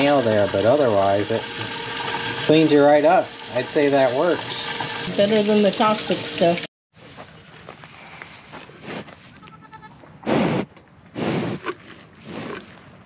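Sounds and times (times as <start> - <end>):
cow breathing and snuffling: 7.0 - 9.4, 10.2 - 13.0.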